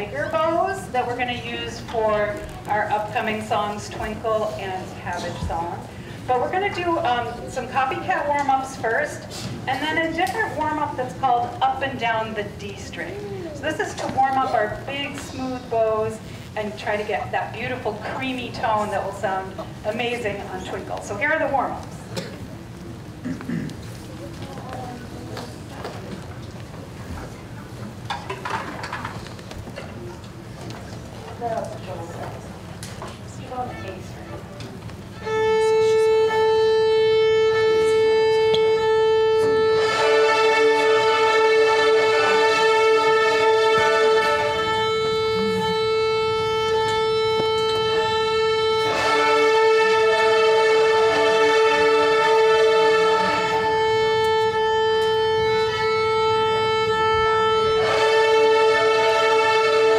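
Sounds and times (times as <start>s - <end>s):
violins playing long bowed notes: 35.1s - 59.9s.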